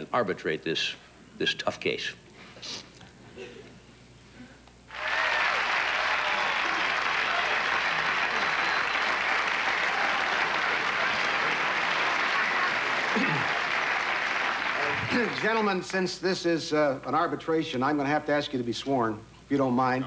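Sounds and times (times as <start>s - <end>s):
audience applauding: 4.9s - 16.0s.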